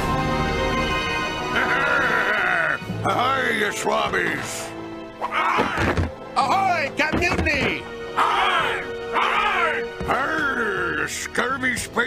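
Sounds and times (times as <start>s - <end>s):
background music: 0.0s - 12.0s
wavering vocal cry: 1.5s - 2.8s, 8.2s - 9.9s.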